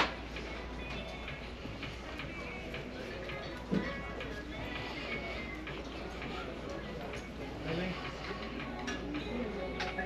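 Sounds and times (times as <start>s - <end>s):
distant shoppers' voices: 0.0s - 10.0s
faint music: 0.0s - 10.0s.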